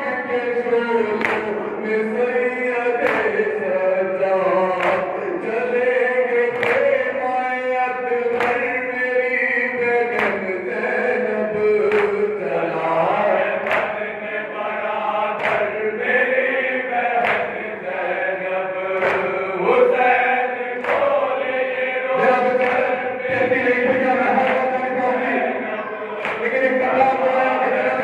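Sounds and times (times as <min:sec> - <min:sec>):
men chanting: 0:00.0 - 0:28.0
crowd slapping chests: 0:01.0 - 0:02.1, 0:03.0 - 0:03.8, 0:04.5 - 0:07.7, 0:08.3 - 0:12.4, 0:13.2 - 0:28.0.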